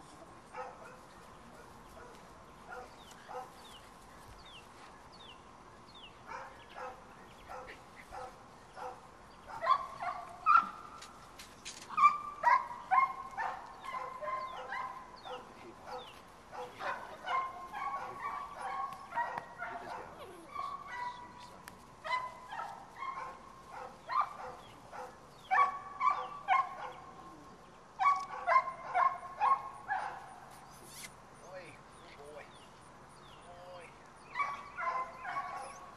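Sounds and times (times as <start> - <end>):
puppies barking and yipping: 6.3 - 27.2, 28.0 - 31.1, 34.2 - 35.9.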